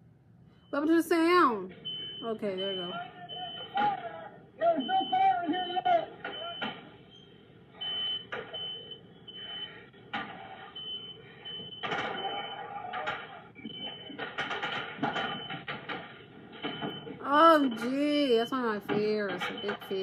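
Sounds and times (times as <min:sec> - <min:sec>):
smoke alarm beeping: 0:00.5 - 0:20.0.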